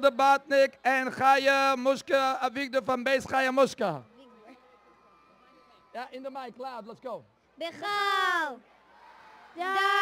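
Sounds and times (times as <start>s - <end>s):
man speaking over loudspeaker: 0.0s - 4.0s.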